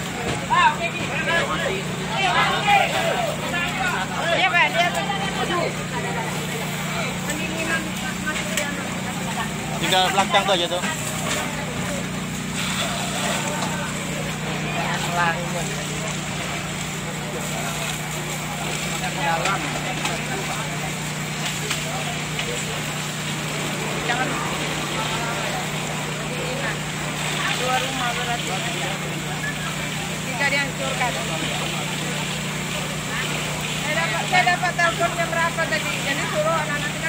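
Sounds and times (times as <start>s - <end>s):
pump engine running: 0.0s - 37.0s
scattered voices: 0.0s - 37.0s
water jets spraying: 0.0s - 37.0s.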